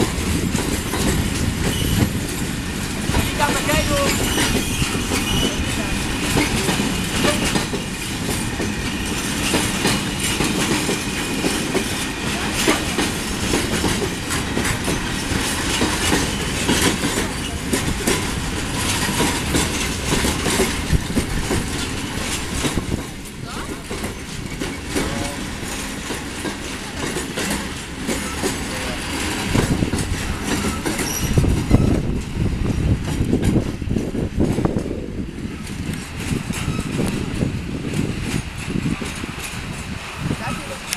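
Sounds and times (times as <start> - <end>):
train wheels clattering over rail joints: 0.0 - 40.9.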